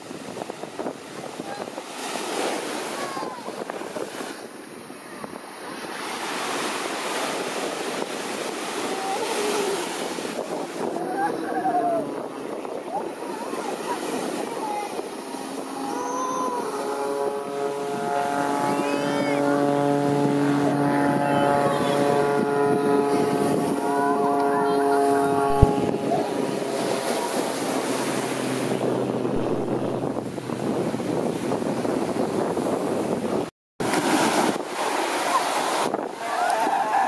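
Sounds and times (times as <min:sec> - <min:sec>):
surf: 0:00.0 - 0:37.0
wind: 0:00.0 - 0:37.0
propeller plane engine humming: 0:08.2 - 0:31.6.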